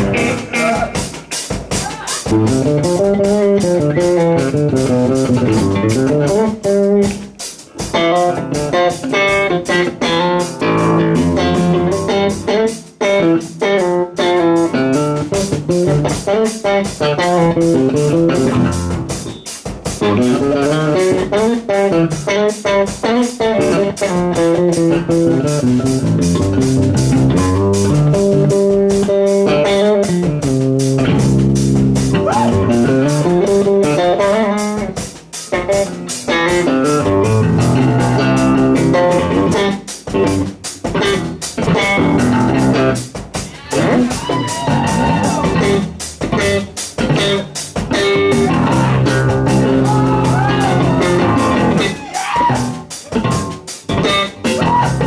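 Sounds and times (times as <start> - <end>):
electric bass guitar solo: 0.0 - 1.2, 1.8 - 55.0.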